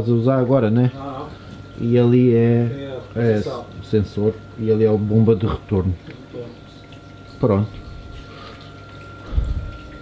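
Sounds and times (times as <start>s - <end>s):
water running and trickling: 2.7s - 10.0s.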